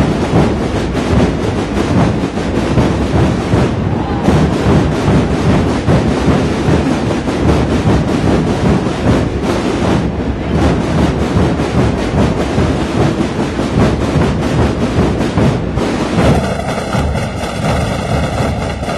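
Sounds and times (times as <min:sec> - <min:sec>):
bass drums beaten: 0:00.0 - 0:18.9
snare drums rolling: 0:00.0 - 0:18.9.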